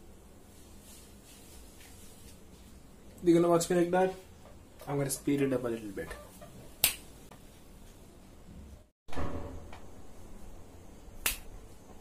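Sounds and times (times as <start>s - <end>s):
faint room noise: 0.0s - 12.0s
sharp snap: 6.8s - 7.1s, 11.2s - 11.5s.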